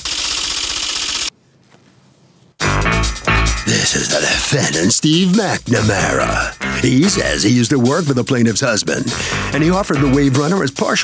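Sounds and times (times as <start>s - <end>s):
rapid typewriter-like clattering: 0.0s - 1.3s.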